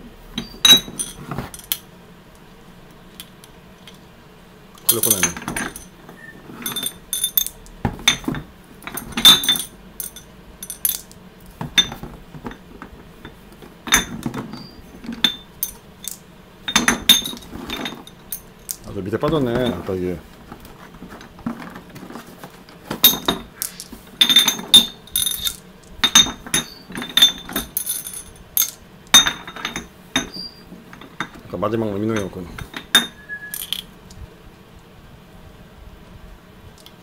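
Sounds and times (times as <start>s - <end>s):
glass bottles clinking: 0.4s - 1.8s, 4.8s - 20.0s, 22.9s - 33.8s.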